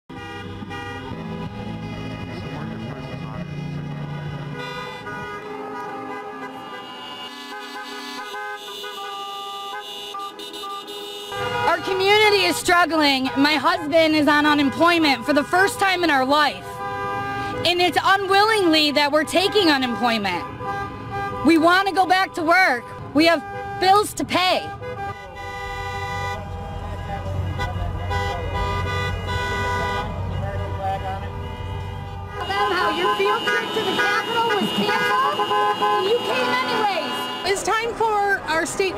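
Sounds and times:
car and truck horns honking: 0.1s - 38.9s.

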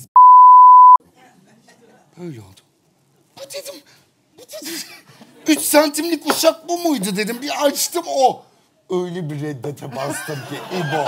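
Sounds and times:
censor bleep tone: 0.1s - 1.0s.

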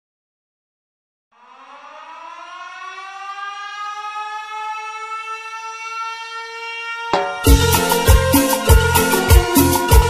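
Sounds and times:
siren winding up: 1.4s - 10.0s.

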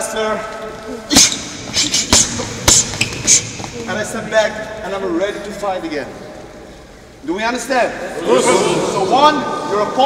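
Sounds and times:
gloves and kick slapping: 1.2s - 3.9s.

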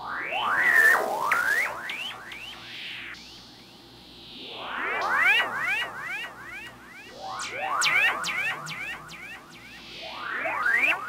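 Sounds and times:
buzzy synthesizer swooping: 2.8s - 11.0s.

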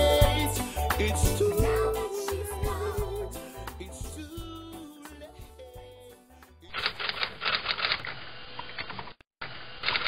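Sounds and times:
song: 0.0s - 6.8s
rapid clatter of clicks: 6.8s - 8.1s.

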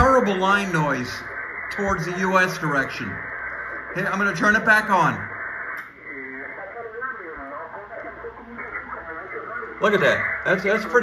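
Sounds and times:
steady radio hiss: 0.0s - 11.0s
thin radio speech: 0.0s - 11.0s.

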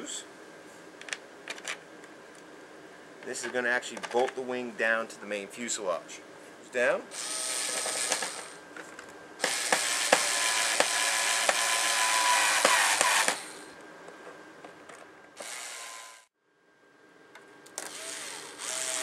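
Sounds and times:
electric screwdriver running: 7.2s - 8.6s, 9.4s - 13.6s, 15.4s - 16.3s, 17.8s - 19.0s.

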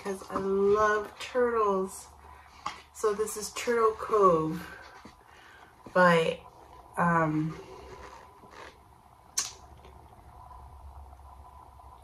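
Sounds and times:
low steady hum: 0.0s - 12.0s
sharp click: 9.4s - 9.6s.

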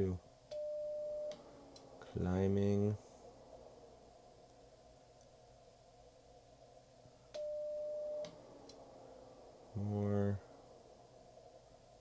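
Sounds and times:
faint receiver hiss: 0.0s - 12.0s
steady sidetone beep: 0.6s - 1.4s, 7.4s - 8.3s.

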